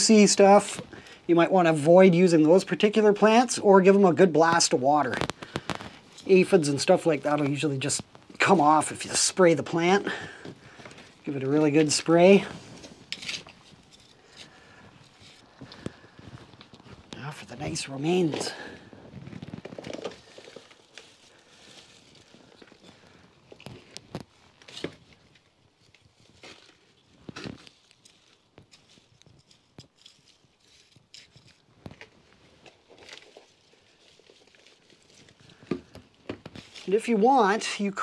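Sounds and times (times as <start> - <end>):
scrapes crackles and rustles: 0.0 - 38.0
hand trowel digging into compost: 10.9 - 16.1.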